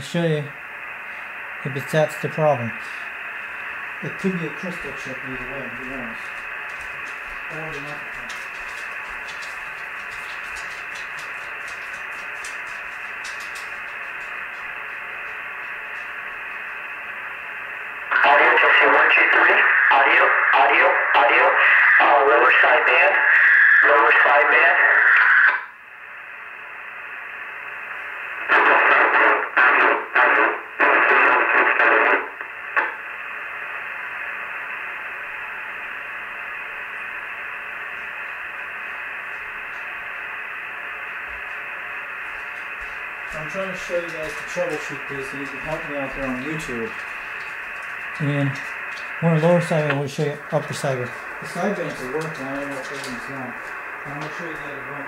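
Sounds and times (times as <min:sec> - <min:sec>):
radio static hiss: 0:00.0 - 0:55.0
voice over radio: 0:01.6 - 0:03.0, 0:04.0 - 0:06.4, 0:07.5 - 0:08.5, 0:18.1 - 0:25.6, 0:28.4 - 0:32.3, 0:43.3 - 0:47.1, 0:48.1 - 0:55.0.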